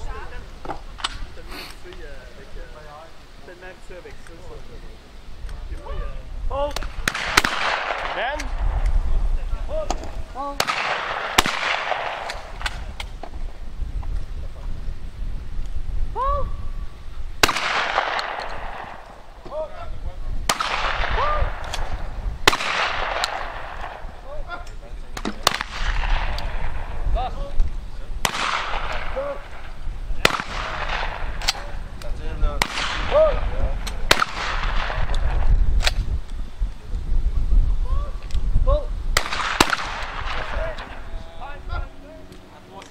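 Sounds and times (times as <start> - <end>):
wind rumbling on microphone: 0.0 - 42.8
shotgun shots echoing: 6.8 - 8.8, 10.4 - 13.0, 17.4 - 19.4, 20.4 - 24.3, 25.2 - 27.0, 28.2 - 31.8, 32.5 - 36.0, 39.2 - 41.1.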